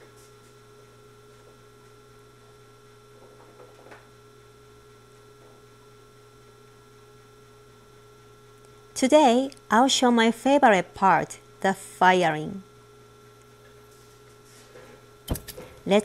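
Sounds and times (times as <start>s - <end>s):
faint electrical hum: 0.0s - 16.0s.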